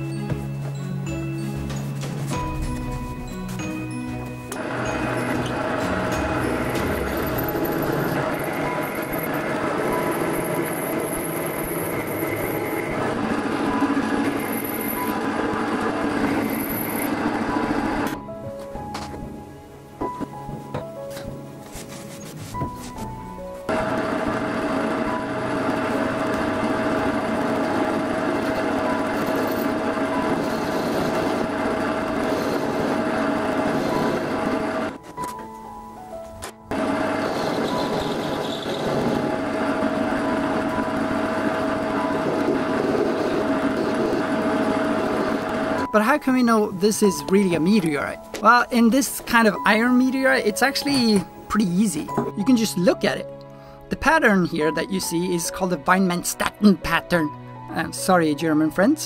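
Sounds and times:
background music: 0.0s - 59.0s
metal lathe machining: 4.5s - 18.2s, 23.7s - 35.0s, 36.7s - 46.0s.

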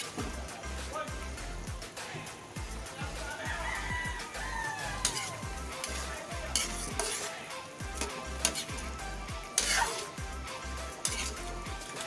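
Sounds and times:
metal ladle scraping wok: 3.8s - 12.0s.

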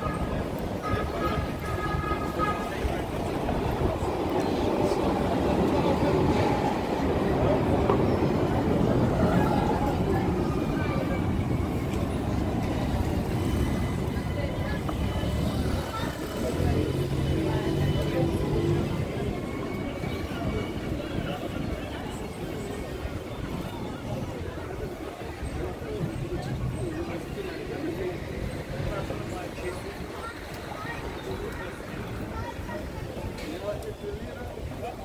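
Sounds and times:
electric tram passing: 0.0s - 33.8s
passersby talking: 0.0s - 35.0s.

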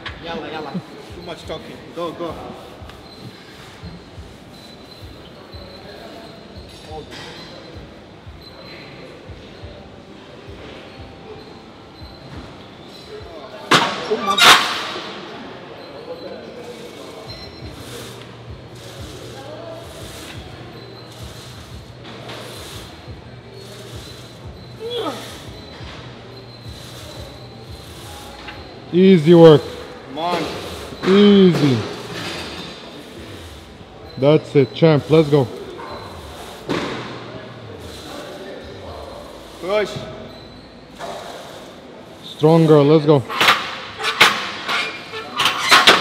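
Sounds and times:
gym background noise: 0.0s - 46.0s
loud metal clanks of leg press: 13.7s - 15.2s, 43.3s - 46.0s.

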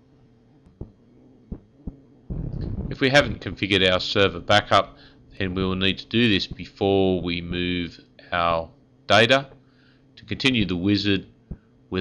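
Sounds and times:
faint steady hum: 0.0s - 12.0s
soft low thumps: 0.6s - 7.7s, 11.4s - 11.7s
rush of low noise: 2.3s - 5.1s
man speaking: 2.9s - 9.5s, 10.2s - 11.3s.

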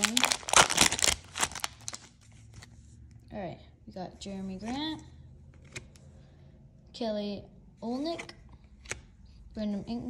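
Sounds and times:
foil wrapper crinkling: 0.0s - 2.2s.

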